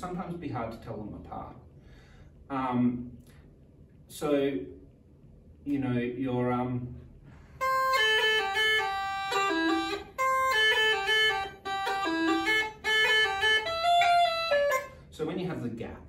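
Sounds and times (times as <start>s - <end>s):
uilleann pipes melody: 7.6s - 15.1s.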